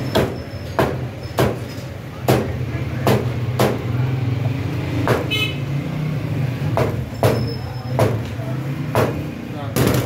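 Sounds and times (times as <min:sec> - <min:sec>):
cleaver chopping on wooden block: 0:00.1 - 0:01.6, 0:02.2 - 0:03.9, 0:05.0 - 0:05.3, 0:06.7 - 0:08.3, 0:08.9 - 0:09.2.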